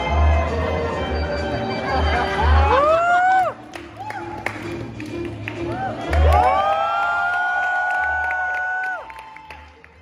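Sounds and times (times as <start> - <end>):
backing music: 0.0 - 10.0
audience whooping and cheering: 2.0 - 4.6, 5.6 - 10.0.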